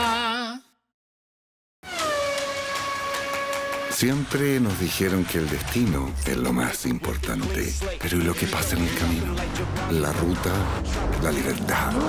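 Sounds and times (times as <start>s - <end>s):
long tone sliding down in pitch: 1.9s - 4.0s.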